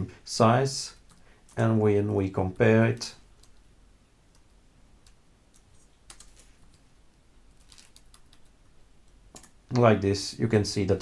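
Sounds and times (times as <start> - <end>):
faint keyboard typing: 0.9 - 1.7, 3.2 - 6.9, 7.5 - 9.9.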